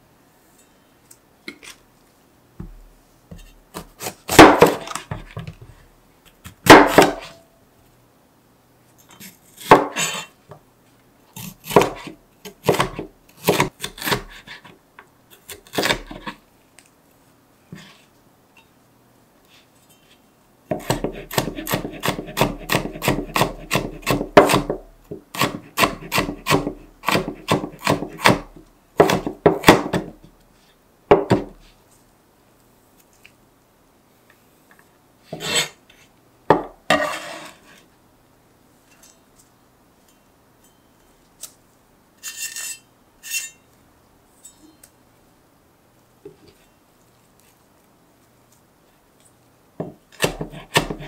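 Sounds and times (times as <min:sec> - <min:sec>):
knife chopping on cutting board: 0:11.6 - 0:14.5, 0:20.7 - 0:30.1, 0:49.8 - 0:51.0.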